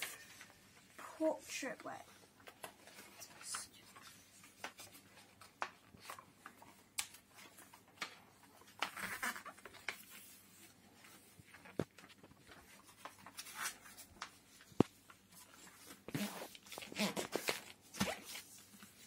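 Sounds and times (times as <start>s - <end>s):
paper rustling and crinkling: 1.6s - 19.0s.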